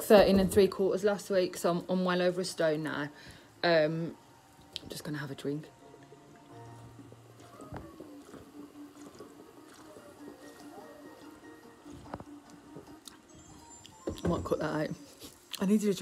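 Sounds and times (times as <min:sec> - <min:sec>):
television music: 0:00.0 - 0:16.0.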